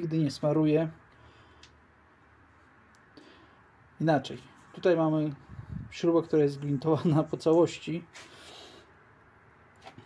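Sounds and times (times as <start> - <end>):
faint breath: 1.1 - 1.9, 3.1 - 3.8, 8.2 - 9.0.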